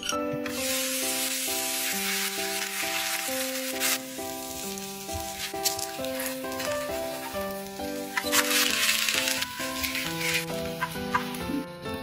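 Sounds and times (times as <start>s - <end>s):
background music: 0.0s - 12.0s
egg and potato sizzling in pan: 0.5s - 11.4s.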